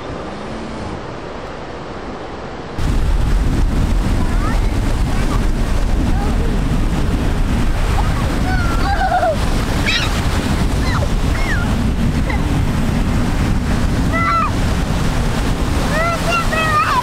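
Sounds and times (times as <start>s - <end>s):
ocean surf breaking: 0.0s - 17.0s
wind buffeting microphone: 0.0s - 17.0s
high-pitched voices calling out: 8.0s - 10.2s, 15.9s - 17.0s.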